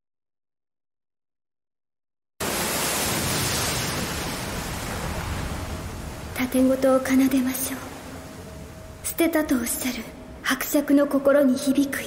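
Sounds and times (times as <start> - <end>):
steady rushing noise: 2.4 - 10.5.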